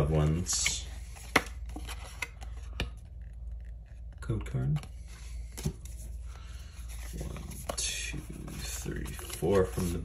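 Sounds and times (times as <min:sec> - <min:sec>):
cards rustling: 0:00.0 - 0:04.2, 0:04.8 - 0:10.0.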